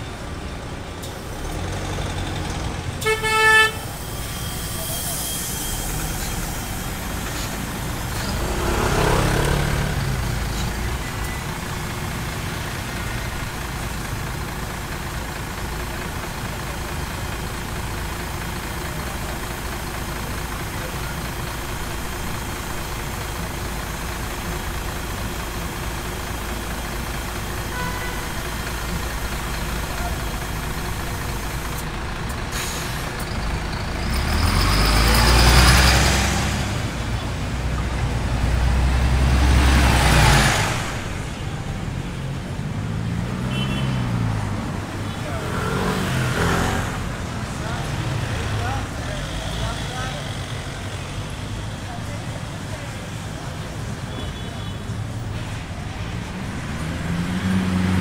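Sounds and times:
low engine rumble of traffic: 0.0 - 58.0
vehicle passing close by: 7.5 - 10.8, 43.0 - 48.8, 56.5 - 58.0.

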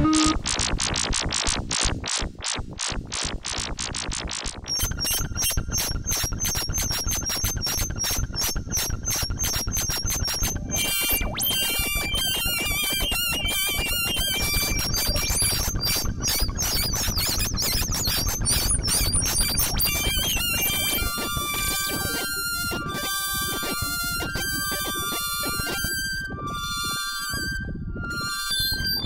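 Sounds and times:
wavering whistle-like tone: 0.0 - 0.4, 9.9 - 17.2, 18.6 - 29.0
steady lower tone: 0.0 - 0.5
stepping high synth tones: 0.0 - 1.7, 7.9 - 29.0
synthesizer electronic pulses: 0.0 - 29.0.

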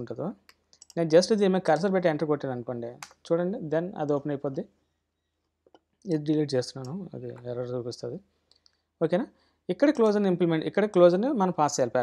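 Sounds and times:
person speaking: 0.0 - 4.8, 6.0 - 12.0.

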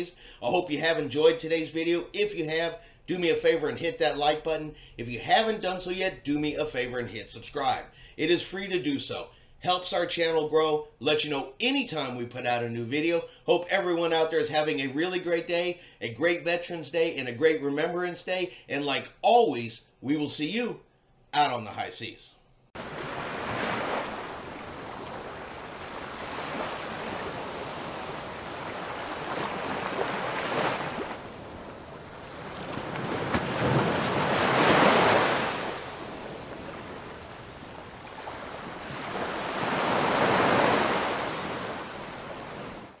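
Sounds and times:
small waves washing up beach: 22.8 - 43.0.

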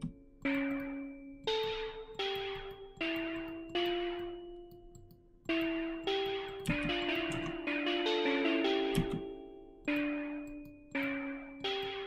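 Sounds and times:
synth melody notes: 0.0 - 12.0.

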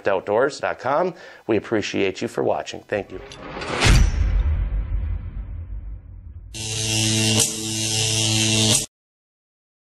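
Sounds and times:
electric humming buzz: 6.5 - 8.9.

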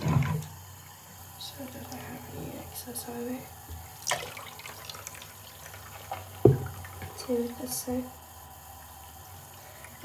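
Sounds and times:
water trickling in a sink: 0.0 - 10.0.

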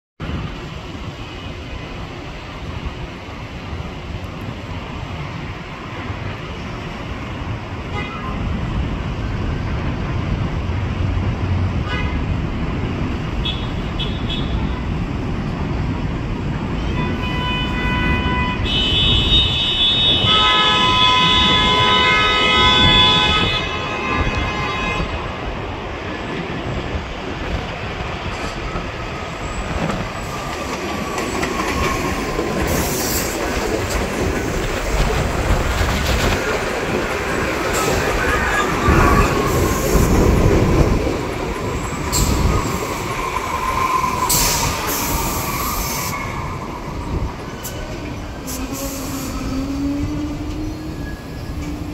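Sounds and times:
subway train wheels rumbling: 0.2 - 51.9
train horn: 16.8 - 25.3, 48.4 - 51.1
high brake squeal: 43.6 - 46.6, 47.5 - 51.9.

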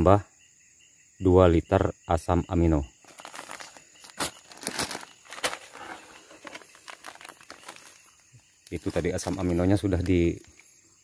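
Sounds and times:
plastic packet crinkling: 3.0 - 10.5.

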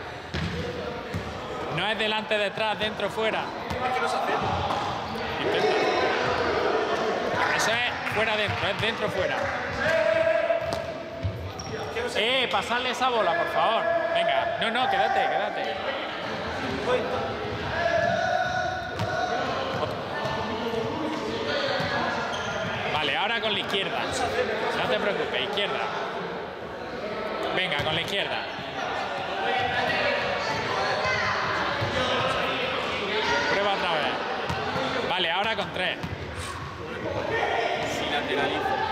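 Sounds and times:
voices echoing in a hall: 0.0 - 38.9.

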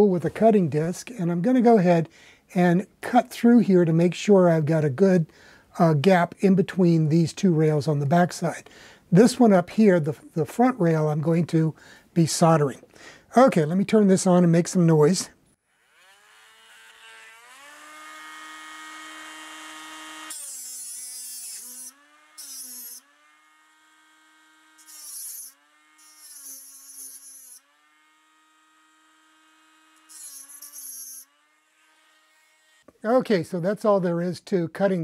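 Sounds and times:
rotary tool whine: 15.6 - 32.9.

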